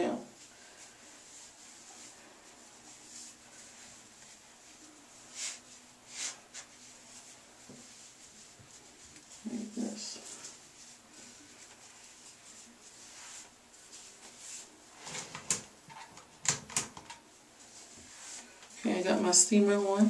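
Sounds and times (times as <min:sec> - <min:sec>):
faint rustling of yarn: 0:00.0 - 0:16.1, 0:17.2 - 0:20.0.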